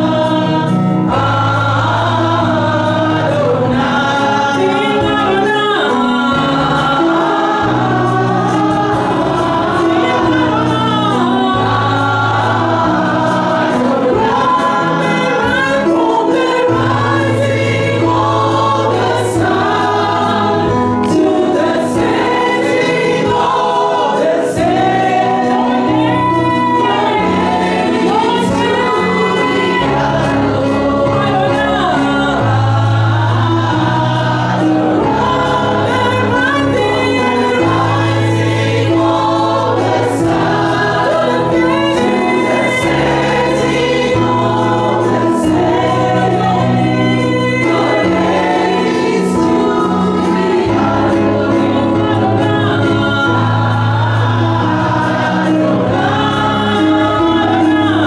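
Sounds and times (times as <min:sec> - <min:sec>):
keyboard sustained chords: 0:00.0 - 0:58.0
woman singing into a microphone: 0:00.0 - 0:58.0.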